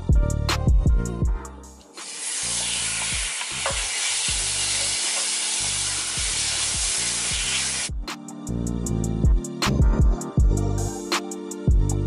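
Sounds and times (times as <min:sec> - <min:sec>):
chicken sizzling in oil: 0:02.0 - 0:07.9.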